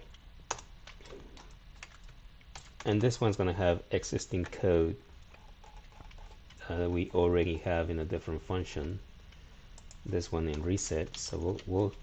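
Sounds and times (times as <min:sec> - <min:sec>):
computer keyboard keystrokes: 0:00.0 - 0:03.2, 0:09.8 - 0:12.0.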